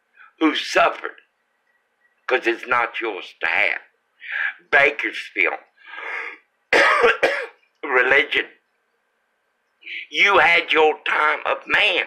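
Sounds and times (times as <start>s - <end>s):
person coughing: 6.2s - 7.6s.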